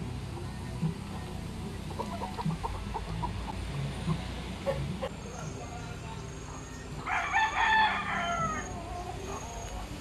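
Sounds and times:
rooster crowing: 7.0 - 9.2.

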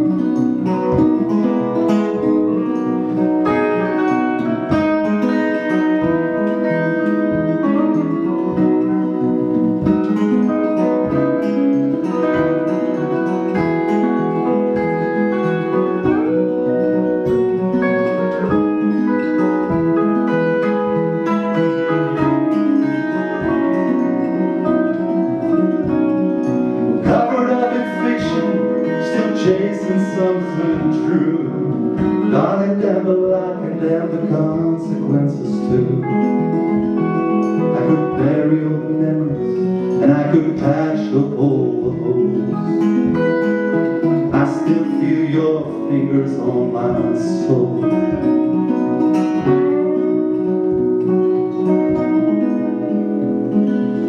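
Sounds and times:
electric guitar with bent notes: 0.0 - 54.0
strummed acoustic guitar: 0.0 - 54.0.

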